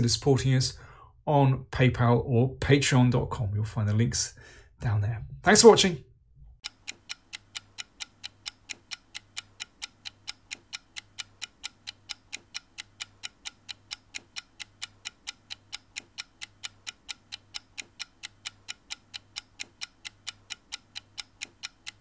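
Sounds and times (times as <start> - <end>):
rapid clock ticking: 6.6 - 22.0.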